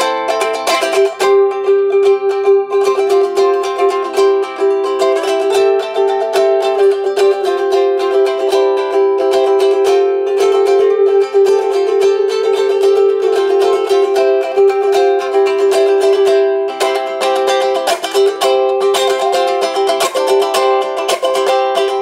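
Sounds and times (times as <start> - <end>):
ukulele plucked tune: 0.0 - 22.0.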